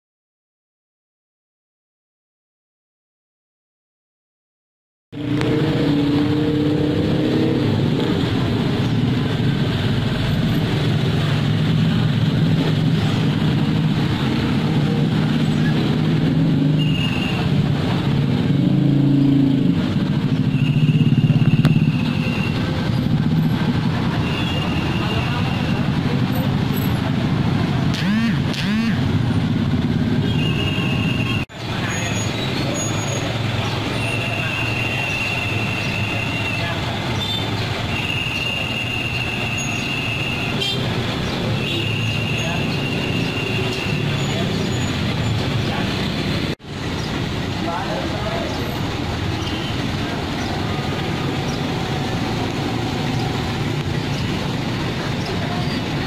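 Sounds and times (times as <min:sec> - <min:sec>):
road traffic: 0:05.1 - 0:56.0
diesel truck engines rumbling: 0:05.2 - 0:56.0.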